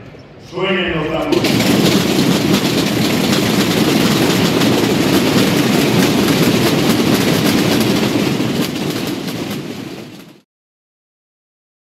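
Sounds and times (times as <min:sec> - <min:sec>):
snare drums rolling: 0:01.1 - 0:10.4.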